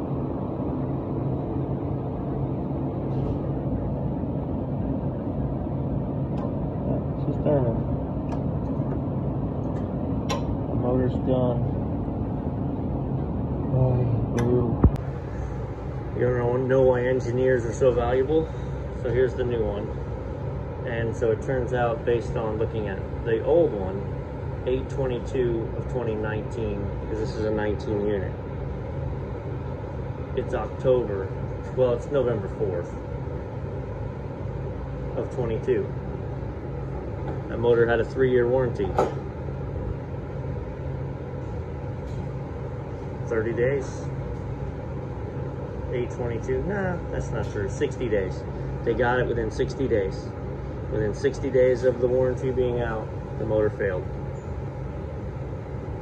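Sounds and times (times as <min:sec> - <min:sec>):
kitchen machinery hum: 0:00.0 - 0:56.0.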